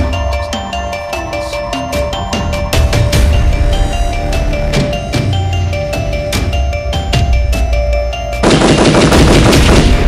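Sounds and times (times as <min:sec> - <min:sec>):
rapid automatic gunfire: 0:08.4 - 0:10.0.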